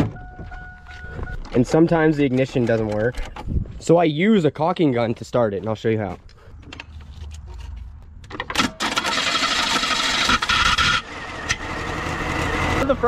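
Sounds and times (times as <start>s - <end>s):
car starter motor cranking: 8.3s - 12.7s.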